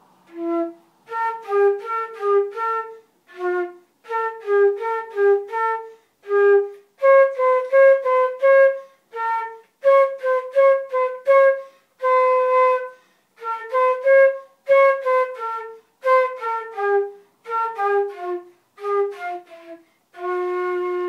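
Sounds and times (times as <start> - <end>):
solo flute melody: 0.1 - 21.0.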